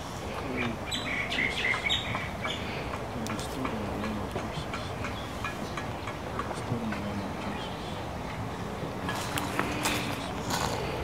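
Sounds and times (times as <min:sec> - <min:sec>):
birds chirping: 0:00.2 - 0:11.0.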